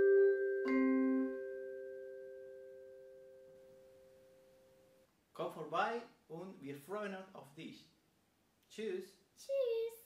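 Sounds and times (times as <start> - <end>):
vibraphone chord ringing: 0.0 - 3.4.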